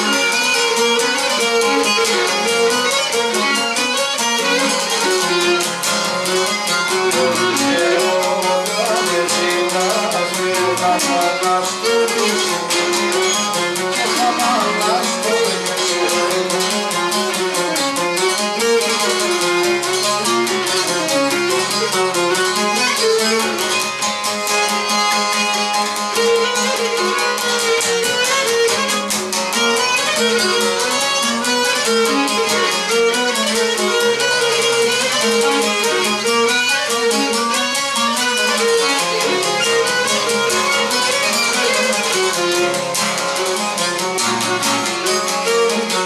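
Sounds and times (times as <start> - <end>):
lute strumming rhythm: 0.0 - 46.0
lyra playing dance melody: 4.1 - 23.7.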